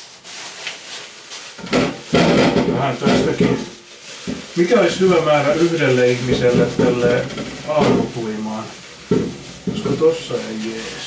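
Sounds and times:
plastic bag rustling: 0.0 - 11.0
potatoes rattling in steel saucepan: 1.6 - 11.0.

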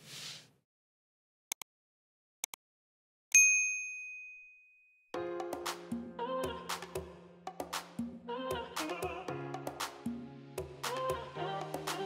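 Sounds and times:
bright bell ding: 3.3 - 5.0.

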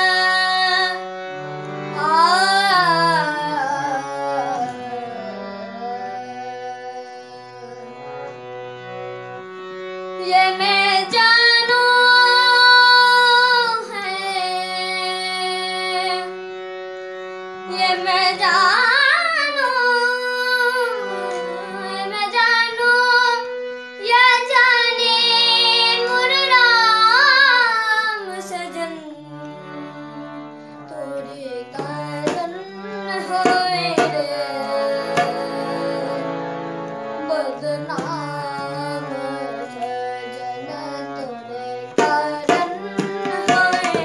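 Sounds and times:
boy singing ornamented melody: 0.0 - 8.8, 10.0 - 44.0
harmonium playing long notes: 0.0 - 44.0.

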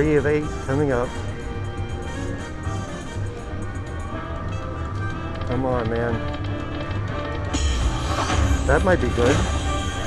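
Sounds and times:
slot machine music and chimes: 7.5 - 10.0.

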